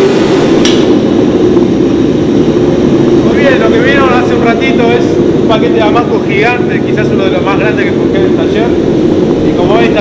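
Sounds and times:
forge burner roaring: 0.0s - 10.0s.

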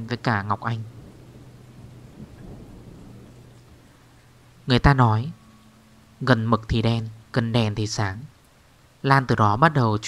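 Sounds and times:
low rumble: 0.0s - 8.4s
steady hiss: 0.0s - 10.0s.

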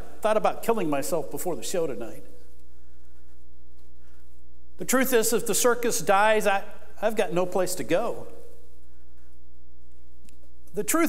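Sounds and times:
man speaking: 0.0s - 2.4s, 4.8s - 8.4s, 10.7s - 11.0s.

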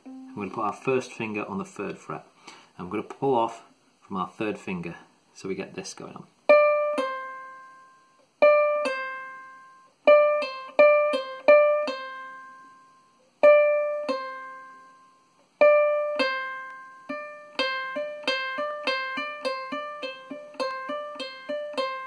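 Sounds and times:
ukulele pull-offs and hammer-ons: 15.6s - 22.0s.

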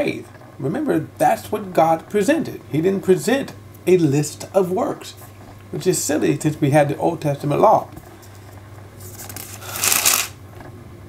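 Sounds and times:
thin pages turning: 8.2s - 10.4s.

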